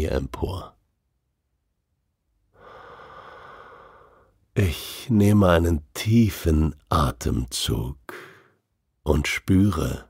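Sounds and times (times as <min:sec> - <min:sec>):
person breathing in deeply: 0:02.5 - 0:04.4.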